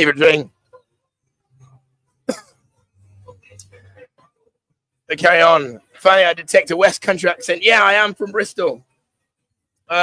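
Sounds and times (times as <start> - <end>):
person coughing: 2.2 - 2.6.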